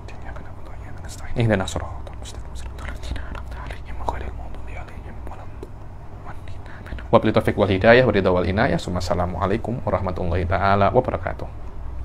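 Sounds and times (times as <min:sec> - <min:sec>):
man whispering recitation: 0:00.0 - 0:08.0
low hum: 0:00.0 - 0:12.0.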